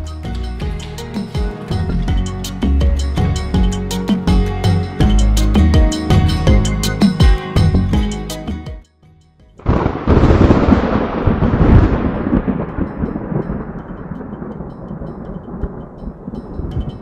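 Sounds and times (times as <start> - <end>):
music: 0.0 - 10.0, 12.8 - 17.0
thunder-like rumble: 9.6 - 17.0.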